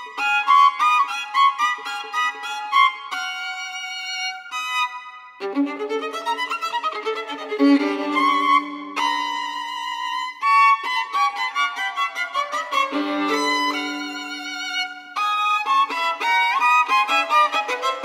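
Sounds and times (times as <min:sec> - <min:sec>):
solo violin playing: 0:00.0 - 0:18.0.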